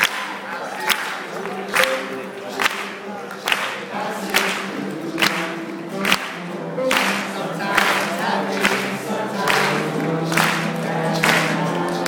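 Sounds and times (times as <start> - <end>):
crowd singing in chorus: 0.0 - 12.0
sharp hand claps: 0.0 - 12.0
strummed acoustic guitars: 1.2 - 12.0.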